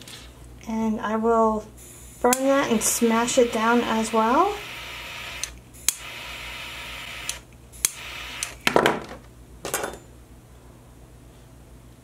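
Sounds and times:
torch lighter hissing: 1.8 - 8.6.

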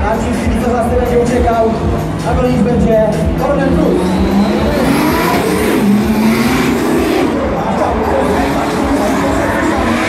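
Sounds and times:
car engines at high revs: 0.2 - 10.0.

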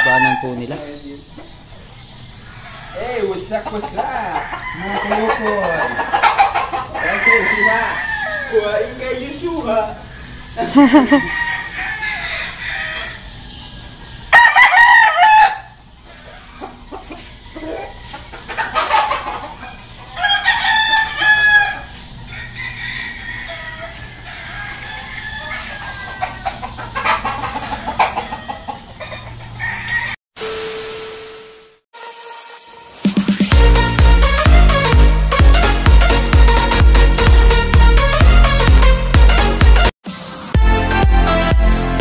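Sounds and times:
roosters crowing: 0.0 - 30.2.

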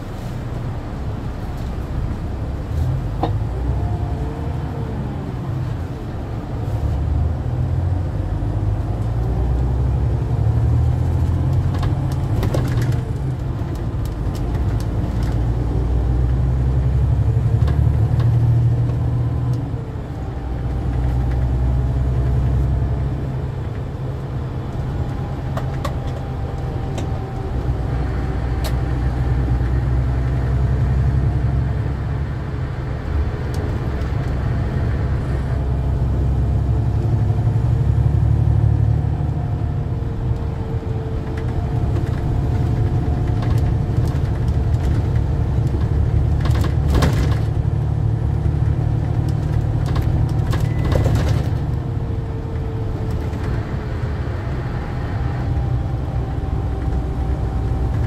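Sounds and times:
diesel engine drone: 0.0 - 58.0
road noise: 0.0 - 58.0
faint rattles and clicks: 41.2 - 47.6, 48.4 - 51.8.

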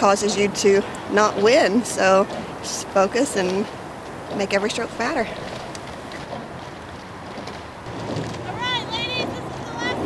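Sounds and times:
faint water sounds: 0.0 - 10.0
oar splashes: 0.0 - 10.0.

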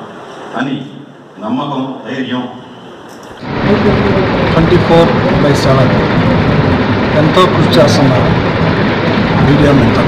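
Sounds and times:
steady background din: 2.5 - 10.0.

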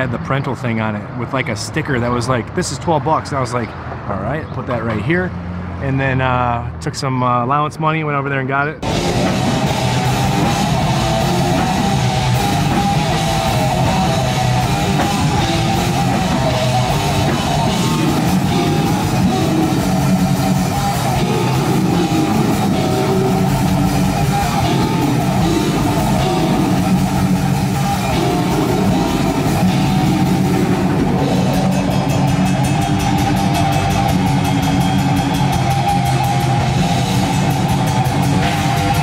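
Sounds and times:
heavy metal music: 8.8 - 39.0.

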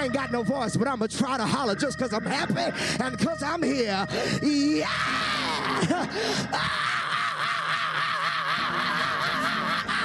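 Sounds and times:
man hollering into microphone: 0.0 - 10.0.

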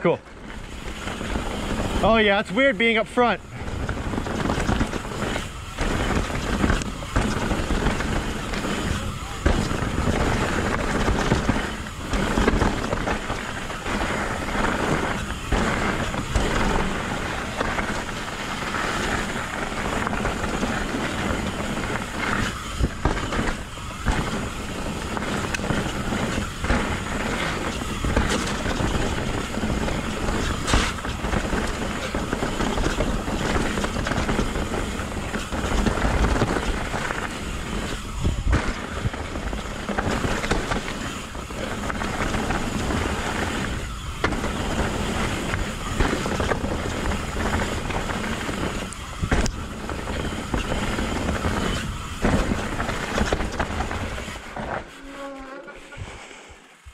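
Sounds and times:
bike tyres rumbling and rattling: 0.0 - 56.9
wind rushing over microphone: 0.0 - 56.9.

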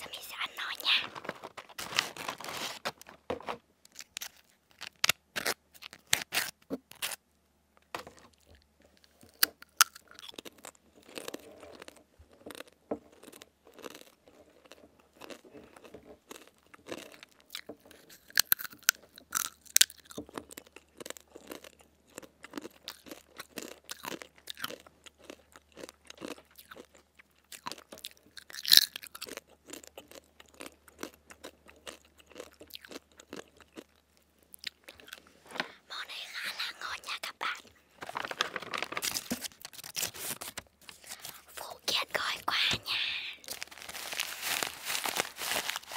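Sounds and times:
crunchy chip chewing: 0.0 - 2.8, 8.4 - 35.3, 35.9 - 45.9
plastic snack bag rustling: 0.0 - 5.0, 35.0 - 45.9.

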